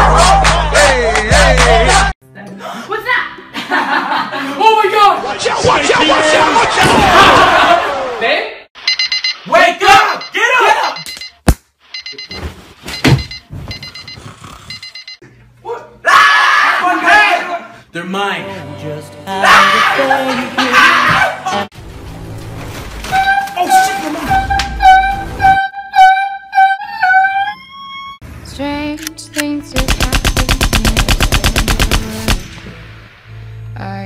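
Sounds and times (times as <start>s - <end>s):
electronic alarm beeping: 8.8s - 15.2s.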